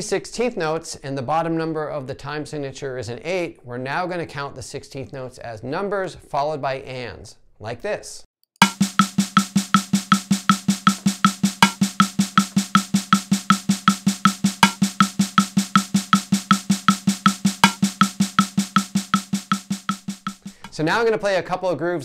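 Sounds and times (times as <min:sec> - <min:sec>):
metronome click: 0:08.6 - 0:20.7
snare drum pattern: 0:08.6 - 0:20.8.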